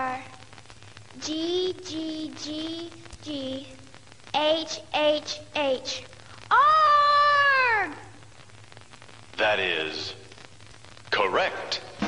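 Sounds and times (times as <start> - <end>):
girl singing: 0.0 - 0.4, 1.2 - 8.0.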